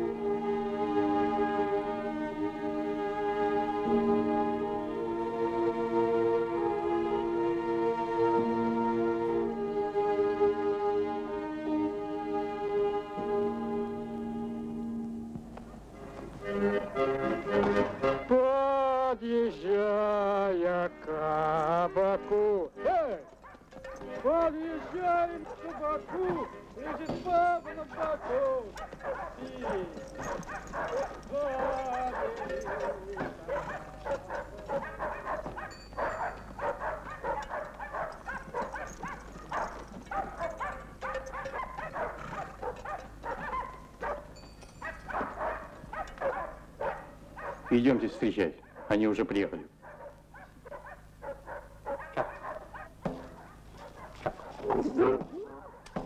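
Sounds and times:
horse hooves: 0:00.8 - 0:18.5, 0:21.0 - 0:49.1, 0:49.7 - 0:56.0
dogs barking and yelping: 0:15.5 - 0:17.1, 0:23.1 - 0:49.0, 0:49.7 - 0:56.0
button accordion playing: 0:15.9 - 0:18.5, 0:20.4 - 0:22.6
indistinct voices: 0:18.3 - 0:43.2.

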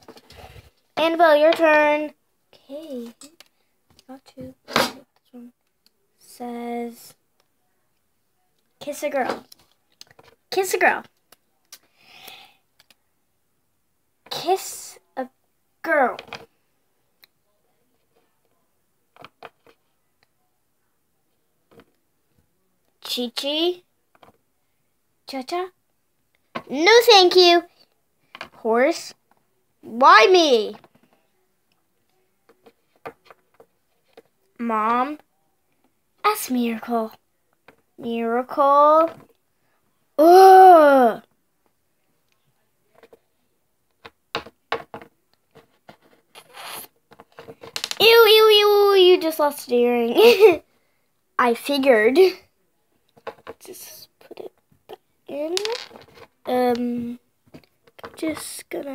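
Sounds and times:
plastic toy knocks and clicks: 0:44.0 - 0:45.1
toy scraping on tabletop: 0:46.0 - 0:46.9.

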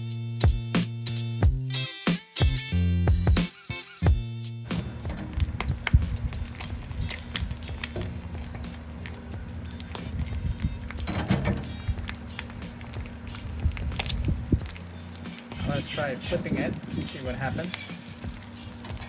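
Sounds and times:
background music: 0:00.0 - 0:19.0
egg sizzling in butter: 0:04.7 - 0:19.0.

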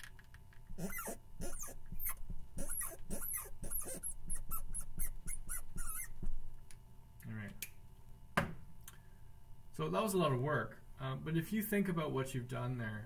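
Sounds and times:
chalk tapping and squeaking: 0:00.8 - 0:06.3.

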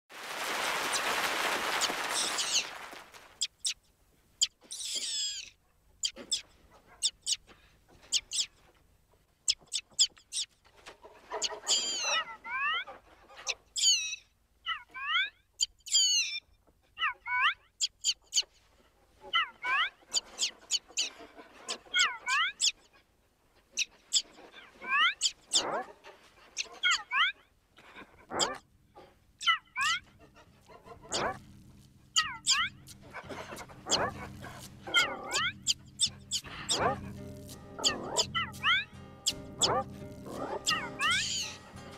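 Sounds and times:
bird chirps and trills: 0:08.1 - 0:08.6, 0:11.4 - 0:12.2, 0:13.5 - 0:14.2, 0:15.1 - 0:16.4, 0:31.0 - 0:41.9.

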